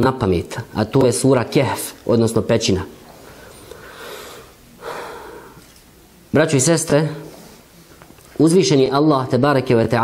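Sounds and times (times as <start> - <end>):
man breathing: 3.2 - 5.7
sharp intake of breath: 3.2 - 5.7.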